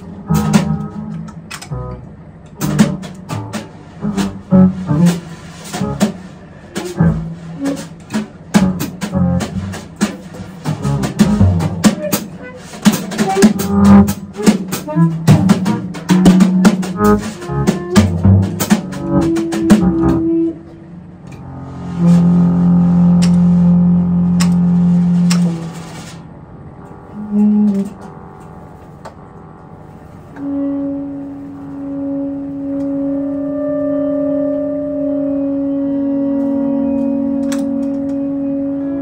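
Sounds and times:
drum and cymbal strikes: 0:00.0 - 0:01.8, 0:02.6 - 0:20.5
tenor saxophone: 0:00.0 - 0:26.2, 0:26.8 - 0:39.0.

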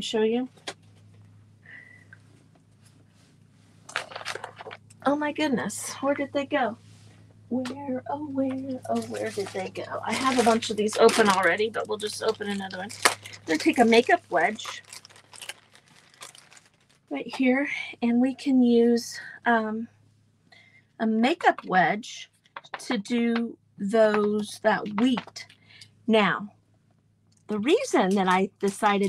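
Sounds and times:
rustling and crunchy crackling: 0:00.5 - 0:05.8, 0:08.4 - 0:17.5, 0:24.0 - 0:25.6, 0:27.7 - 0:29.0
packaging crinkling: 0:03.9 - 0:04.8, 0:08.8 - 0:17.1
hands rummaging through craft supplies: 0:03.9 - 0:04.9, 0:08.5 - 0:17.0, 0:24.0 - 0:25.6, 0:27.7 - 0:29.0
short crackles and ticks: 0:09.0 - 0:17.1.

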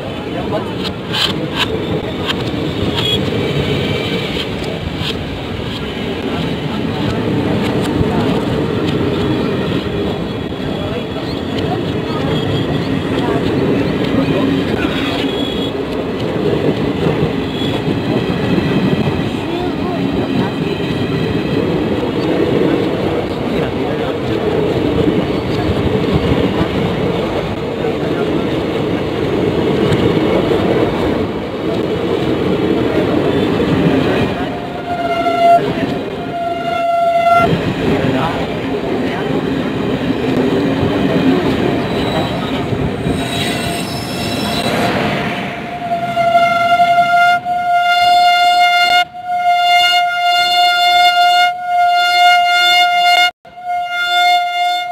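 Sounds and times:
train wheels rumbling on rails: 0:00.0 - 0:47.2
train horn blasts: 0:34.7 - 0:37.6, 0:45.8 - 0:54.9.

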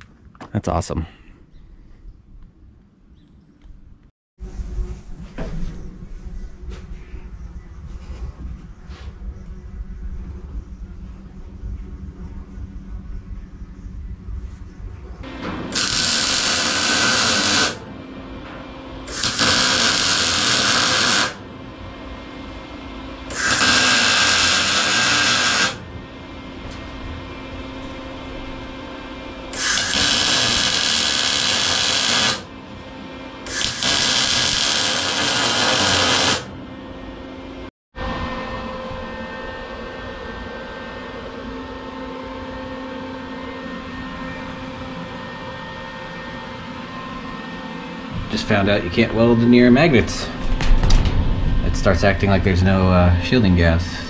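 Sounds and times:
steady hum: 0:00.0 - 0:54.0
welder arc crackling and hissing: 0:15.7 - 0:17.9, 0:19.0 - 0:21.4, 0:23.2 - 0:25.8, 0:29.3 - 0:32.8, 0:33.4 - 0:36.5.

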